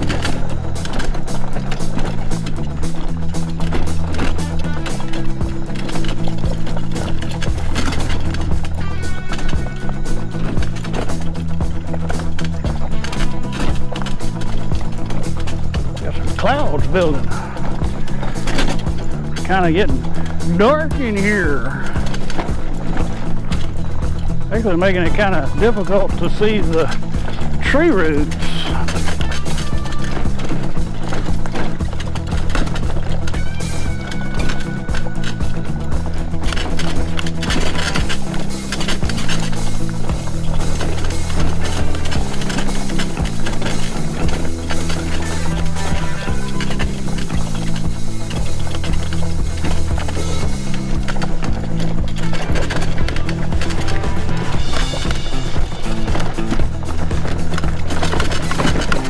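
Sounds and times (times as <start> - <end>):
low bass line music: 0.0 - 59.0.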